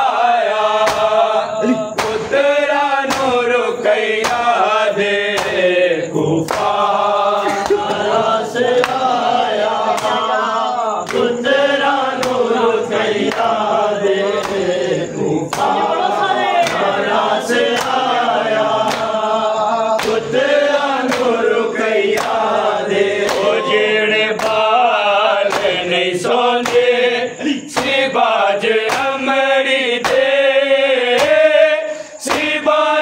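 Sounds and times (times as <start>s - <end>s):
men chanting: 0.0s - 33.0s
hands slapping chests: 0.8s - 1.2s, 1.9s - 3.5s, 4.2s - 4.6s, 5.3s - 5.7s, 6.4s - 10.4s, 11.0s - 12.6s, 13.2s - 13.7s, 14.4s - 14.8s, 15.5s - 19.2s, 19.9s - 21.5s, 22.1s - 24.7s, 25.4s - 25.9s, 26.6s - 27.0s, 27.7s - 28.1s, 28.8s - 29.2s, 30.0s - 30.3s, 31.1s - 31.5s, 32.2s - 32.6s.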